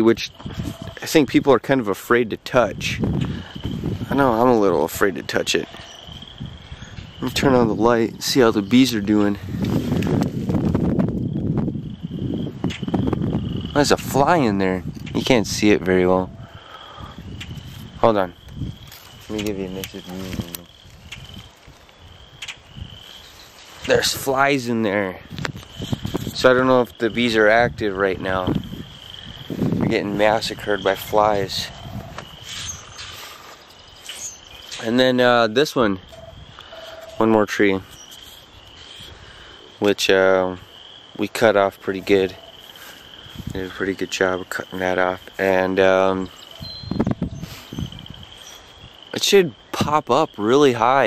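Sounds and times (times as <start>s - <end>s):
insects trilling: 0.0s - 51.0s
man's voice: 4.1s - 5.7s, 23.8s - 25.3s, 29.8s - 31.8s, 43.5s - 46.3s
sharp click: 22.4s - 22.6s.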